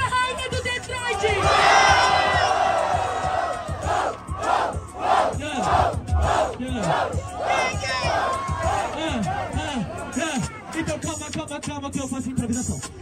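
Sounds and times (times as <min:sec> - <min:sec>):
crowd shouting and cheering: 0:00.0 - 0:11.6.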